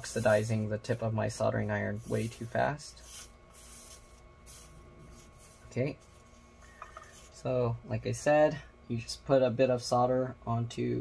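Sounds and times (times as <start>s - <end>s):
soldering iron tip hissing: 0.0s - 7.5s.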